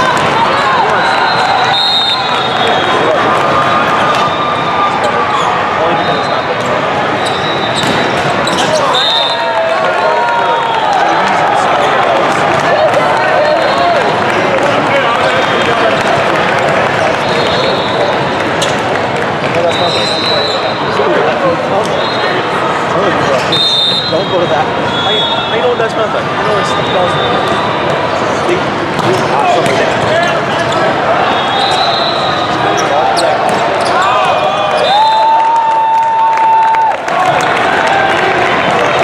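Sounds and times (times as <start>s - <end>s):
volleyballs struck and bouncing: 0.0s - 1.1s, 7.7s - 8.9s, 28.8s - 30.3s, 33.4s - 34.5s
overlapping voices: 9.2s - 21.4s, 32.6s - 39.0s.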